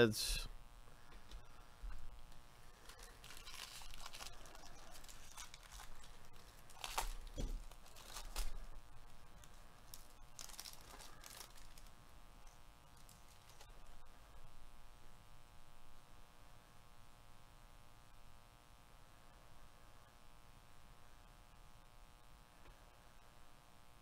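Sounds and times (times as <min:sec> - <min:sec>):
foil wrapper tearing and crinkling: 0:02.2 - 0:13.8.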